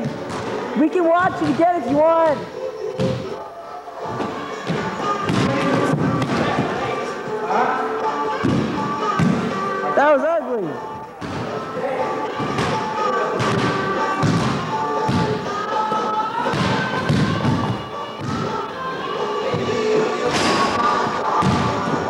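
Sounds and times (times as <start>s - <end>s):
music playing: 0.0s - 22.0s.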